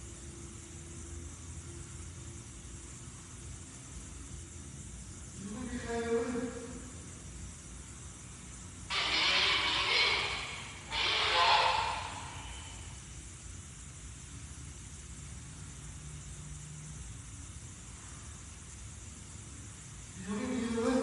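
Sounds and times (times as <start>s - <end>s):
faint steady background hiss: 0.0s - 21.0s.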